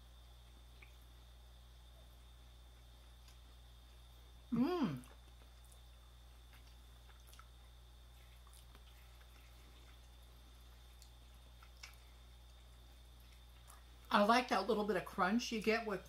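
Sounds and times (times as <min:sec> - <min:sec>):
people chewing: 0:02.1 - 0:14.1.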